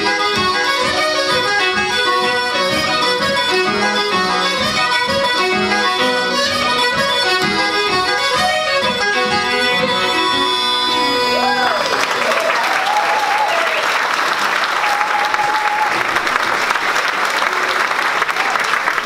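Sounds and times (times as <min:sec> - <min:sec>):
button accordion: 0:00.0 - 0:12.2
fiddle: 0:00.0 - 0:12.3
uilleann pipes: 0:00.0 - 0:13.8.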